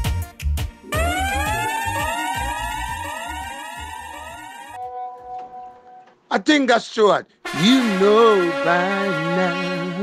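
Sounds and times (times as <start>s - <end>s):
dub siren pitch sweeps: 0.9s - 4.8s
steady held tones: 0.9s - 4.9s.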